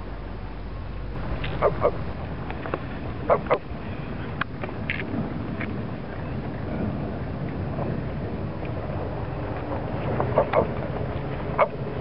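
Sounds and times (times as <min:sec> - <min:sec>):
fire rumbling: 0:00.0 - 0:12.0
wind on microphone: 0:00.0 - 0:12.0.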